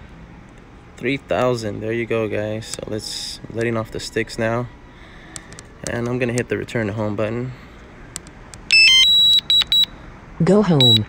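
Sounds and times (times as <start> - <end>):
high alert beeps: 8.7 - 9.9.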